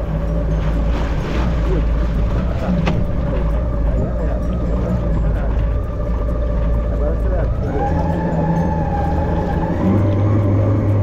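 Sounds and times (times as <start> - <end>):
jet ski engine drone: 0.0 - 11.0
water rushing past hull: 0.0 - 11.0.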